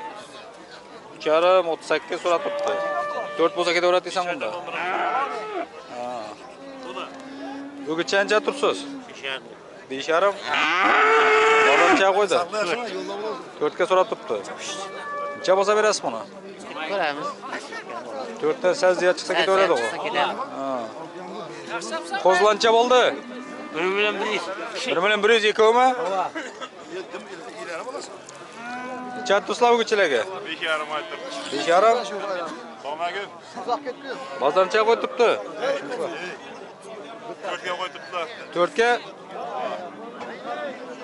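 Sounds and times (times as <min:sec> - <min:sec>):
market chatter: 0:00.0 - 0:41.0
cow mooing: 0:02.2 - 0:03.6, 0:06.6 - 0:09.1, 0:10.5 - 0:12.0, 0:14.7 - 0:15.5, 0:22.9 - 0:24.8, 0:28.6 - 0:29.4
men's voices: 0:05.9 - 0:10.4.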